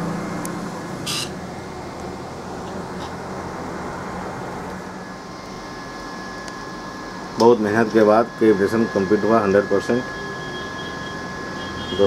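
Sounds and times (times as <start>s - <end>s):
mechanical background hum: 0.0s - 12.0s
faint thin whine: 4.6s - 12.0s.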